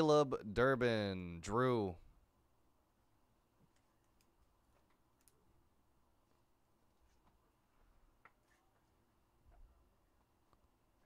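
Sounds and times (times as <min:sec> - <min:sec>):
faint soft clicks of card handling: 0:03.6 - 0:05.5.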